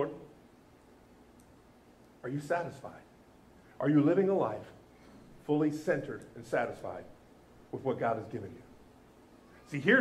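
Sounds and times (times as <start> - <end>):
man speaking: 5.4 - 8.7, 9.6 - 10.0.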